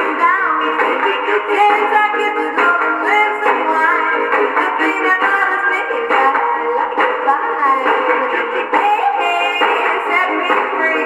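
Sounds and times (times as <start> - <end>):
old pop record on gramophone: 0.0 - 11.0.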